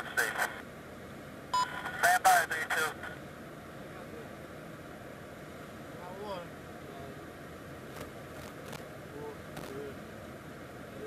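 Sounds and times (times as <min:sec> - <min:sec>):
radio voice traffic: 0:00.0 - 0:00.6, 0:01.6 - 0:03.2
steady low hiss: 0:00.0 - 0:11.0.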